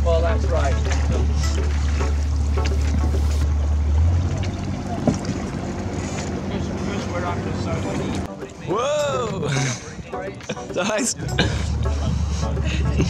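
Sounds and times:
paddles splashing water: 0.0s - 13.0s.

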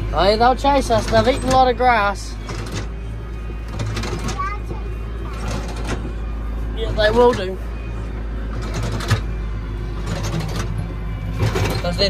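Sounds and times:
tractor engine drone: 0.0s - 12.0s.

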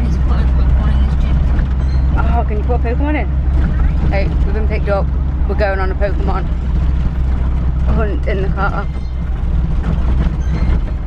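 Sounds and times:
car engine rumble: 0.0s - 11.0s
road noise: 0.0s - 11.0s.

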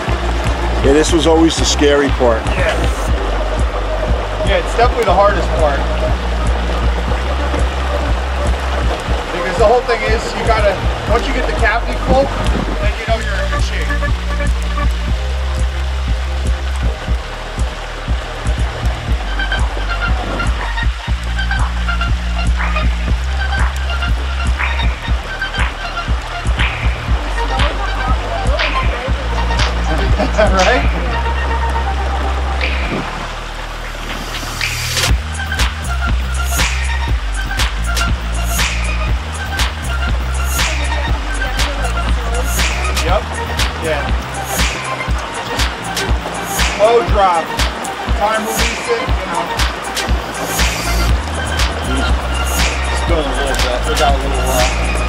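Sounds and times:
music with bass and drums: 0.0s - 55.0s.

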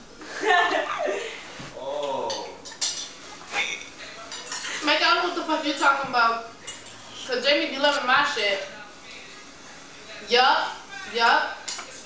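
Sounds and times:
fork clinking and scraping on plate: 2.3s - 4.8s, 6.6s - 7.2s.

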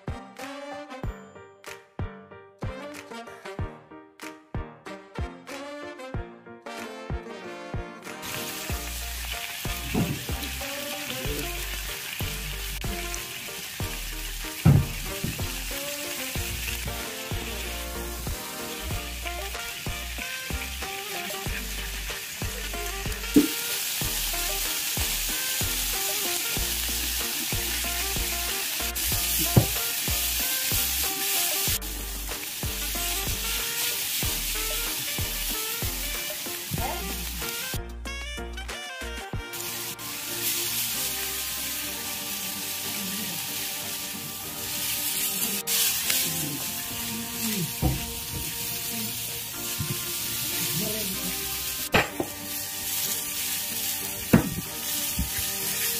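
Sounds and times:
skewers sizzling on hot iron: 8.1s - 37.8s, 39.4s - 55.9s
sharp knocks: 14.7s - 15.4s.

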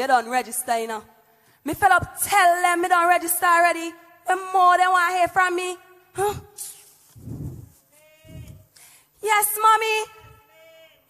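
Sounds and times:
woman's wordless voice: 0.0s - 6.8s, 7.6s - 11.0s.

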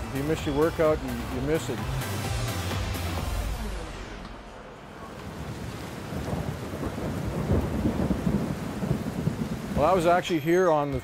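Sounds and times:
low rumbling with rain-like hiss: 3.2s - 10.5s.

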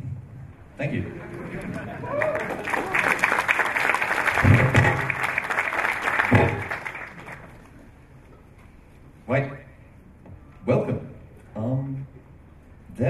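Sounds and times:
audience applauding: 1.1s - 7.9s.

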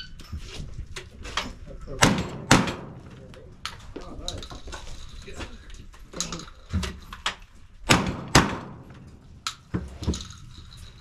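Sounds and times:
gunshots with ringing tail: 2.0s - 3.1s, 7.8s - 9.0s.

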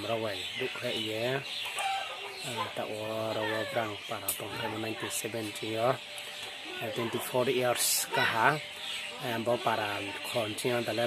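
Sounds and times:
man speaking: 2.4s - 6.0s, 6.7s - 11.0s.

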